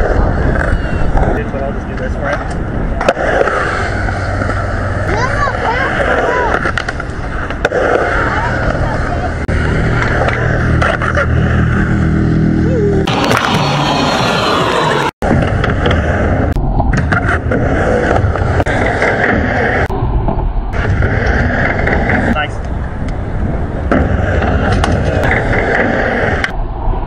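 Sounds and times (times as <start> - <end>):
skateboard wheels rolling on concrete: 0.0 - 27.0
people's voices: 5.1 - 6.8, 8.0 - 9.5.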